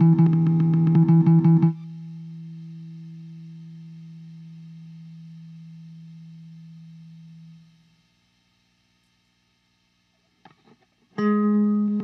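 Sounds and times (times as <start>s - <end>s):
low sustained guitar tone: 0.0s - 8.4s, 10.5s - 12.0s.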